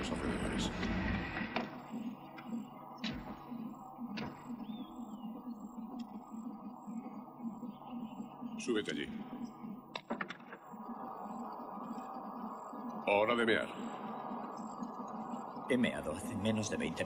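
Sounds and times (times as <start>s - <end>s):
faint pulsing background: 0.0s - 17.0s.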